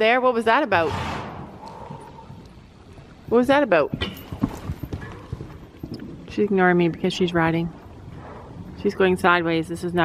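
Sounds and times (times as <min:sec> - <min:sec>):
horse hoofbeats on soft dirt: 0:01.7 - 0:10.0.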